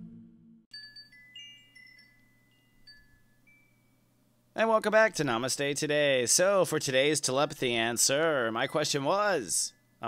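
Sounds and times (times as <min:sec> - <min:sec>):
high chime tones tinkling: 0:00.7 - 0:04.1, 0:08.5 - 0:10.0.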